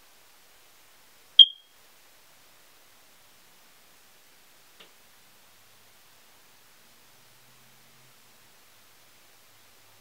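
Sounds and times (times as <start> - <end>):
short high-pitched beep: 1.4 - 1.7.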